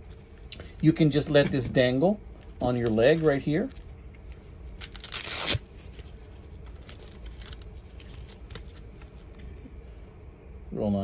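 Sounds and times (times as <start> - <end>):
velcro strap ripping: 4.6 - 8.8.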